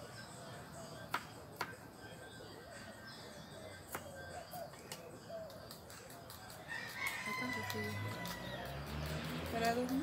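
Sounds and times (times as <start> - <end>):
rooster crowing: 6.7 - 8.9.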